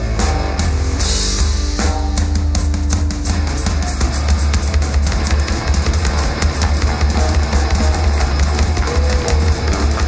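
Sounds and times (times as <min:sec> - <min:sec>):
bass drum: 0:00.0 - 0:10.0
live band playing loudly: 0:00.0 - 0:10.0.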